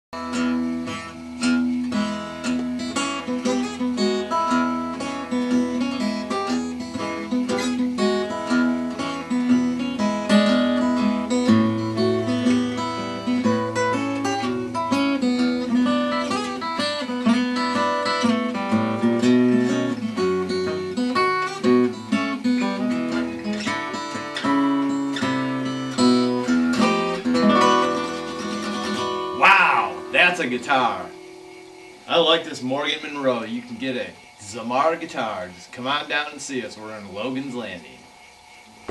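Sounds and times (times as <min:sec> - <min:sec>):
fingerpicked acoustic guitar: 0:00.2 - 0:38.9.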